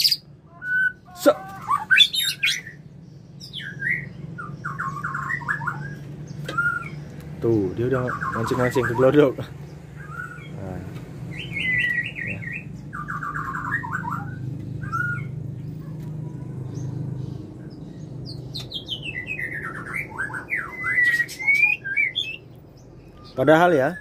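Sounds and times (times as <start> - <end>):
bird trills and whistles: 0.0 - 2.8, 3.4 - 7.0, 11.3 - 15.4, 18.5 - 24.0
low steady hum: 0.0 - 24.0.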